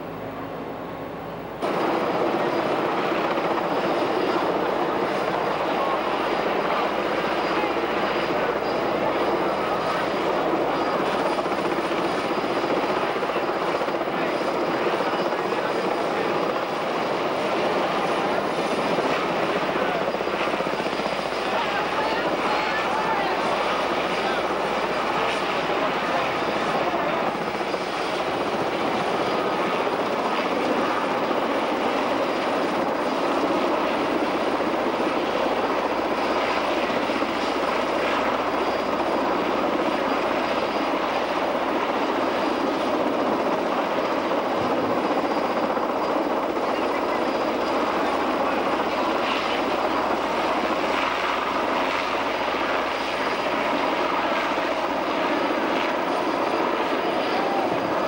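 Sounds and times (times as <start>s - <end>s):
helicopter flying overhead: 0.0s - 58.0s.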